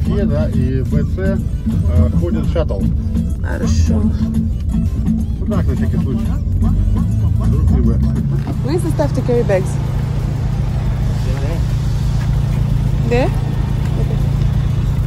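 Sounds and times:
car engine humming: 0.0 - 15.0
music playing: 0.0 - 15.0.

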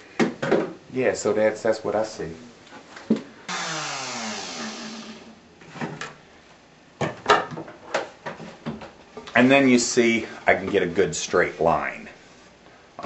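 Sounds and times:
router motor winding down: 3.5 - 5.4.

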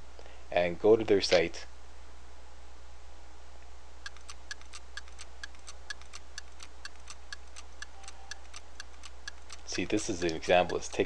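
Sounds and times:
rapid mechanical ticking: 4.0 - 11.0.

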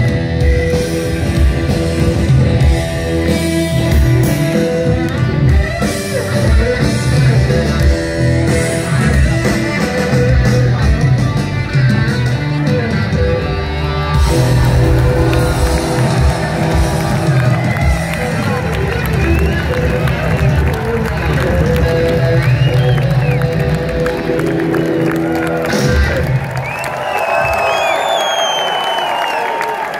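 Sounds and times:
rock band sustained chord: 0.0 - 26.2
crowd cheering: 11.8 - 29.9
crowd whistling: 12.7 - 29.9.

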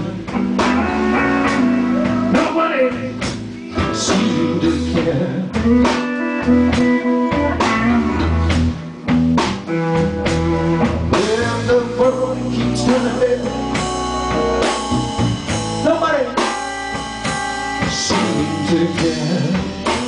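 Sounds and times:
person singing: 0.0 - 8.3, 10.5 - 13.8, 17.8 - 20.0
electric guitar fills: 0.0 - 20.0
live blues band: 0.0 - 20.0.

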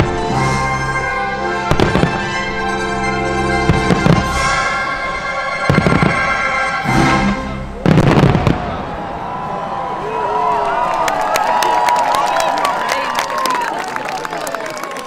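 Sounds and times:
show music of held notes: 0.0 - 7.9
fireworks bursting in bangs: 1.7 - 2.4, 3.7 - 4.7, 5.6 - 6.4, 7.8 - 8.8.

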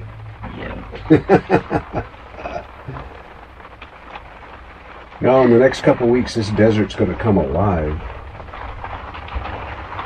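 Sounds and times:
low steady hum: 0.0 - 10.0
person laughing: 0.8 - 3.2.

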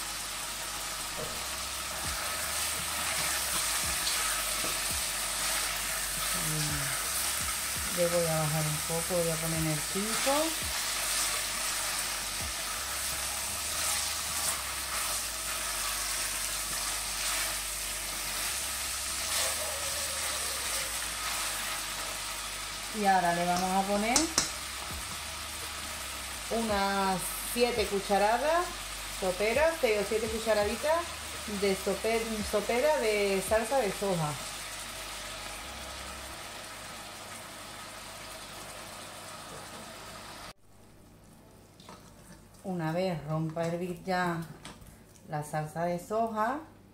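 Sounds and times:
meat sizzling in oil: 0.0 - 40.6.

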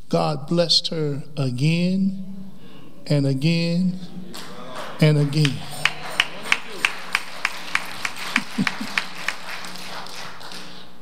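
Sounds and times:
rhythmic hand clapping: 4.2 - 11.0.

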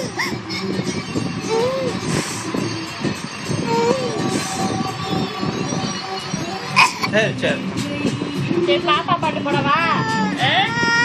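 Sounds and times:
toddler whimpering: 0.0 - 2.2, 3.6 - 4.4, 10.0 - 11.0.

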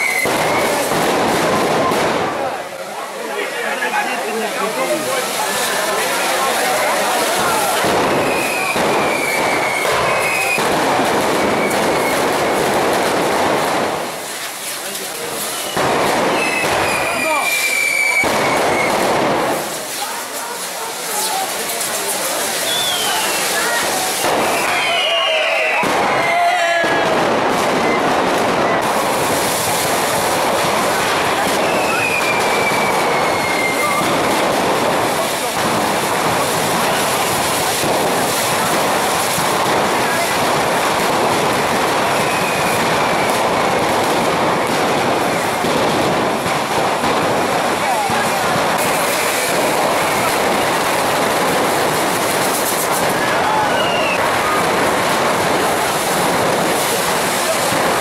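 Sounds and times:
crowd voices: 0.0 - 58.0
rockets rushing hiss and crackle: 0.0 - 58.0
whistles gliding down in pitch: 22.6 - 23.5.

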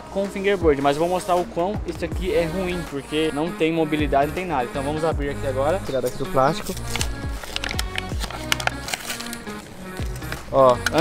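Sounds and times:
background music with a beat: 0.0 - 11.0
plastic blister pack crinkling: 6.4 - 11.0.

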